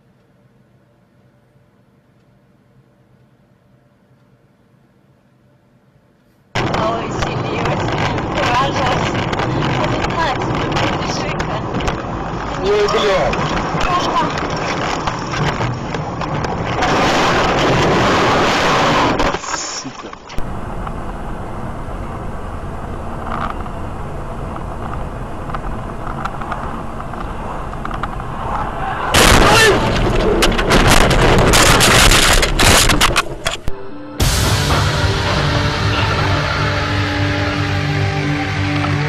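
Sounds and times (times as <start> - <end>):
road and engine noise: 6.6 - 19.4, 20.3 - 39.0
sharp bangs and knocks: 28.9 - 39.0.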